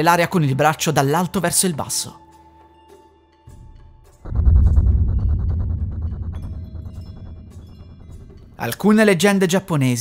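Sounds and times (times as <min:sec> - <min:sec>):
deep boom with throbbing pulse: 0:04.2 - 0:08.7.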